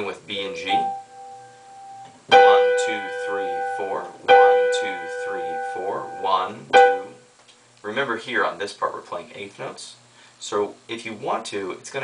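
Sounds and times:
digital piano interval: 0.0 - 7.3.

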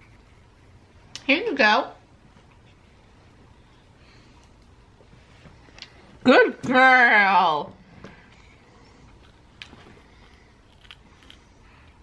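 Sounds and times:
baby gnawing on rice cracker: 9.1 - 11.9.

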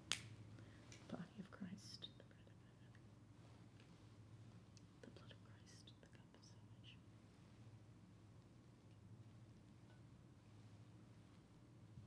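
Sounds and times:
faint room hum: 0.0 - 12.0
soft whispers: 0.5 - 4.3, 4.9 - 7.8.

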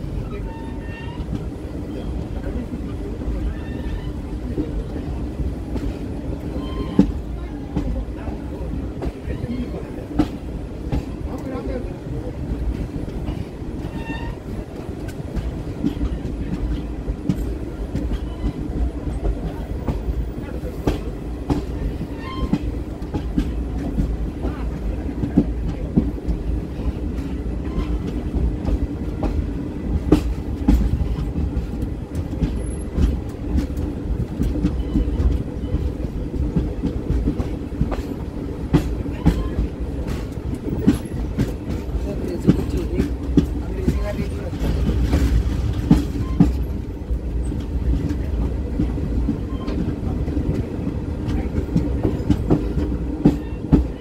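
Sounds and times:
train running gear rumble: 0.0 - 54.0
train wheels clicking on rails: 0.0 - 54.0.

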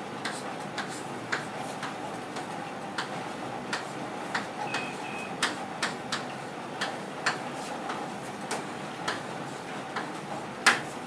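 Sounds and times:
chalk tapping and scraping on blackboard: 0.2 - 11.0.

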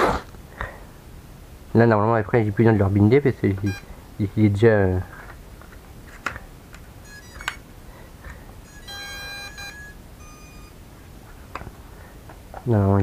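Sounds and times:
electronic beep: 3.6 - 3.9, 7.0 - 7.6, 8.6 - 10.8.

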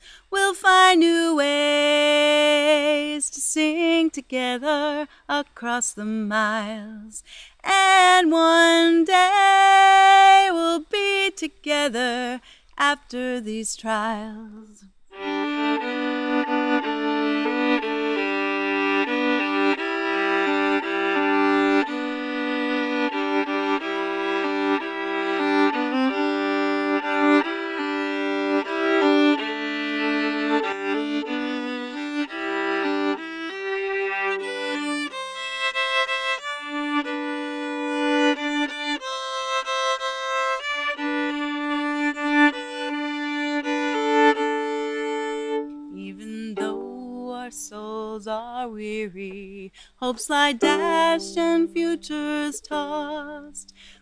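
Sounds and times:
bowed violin melody: 15.1 - 48.2, 50.4 - 53.9.

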